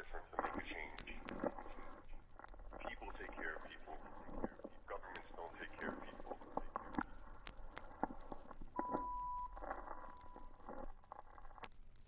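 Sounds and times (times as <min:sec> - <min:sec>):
person speaking quietly: 0:00.0 - 0:02.2, 0:02.8 - 0:07.2.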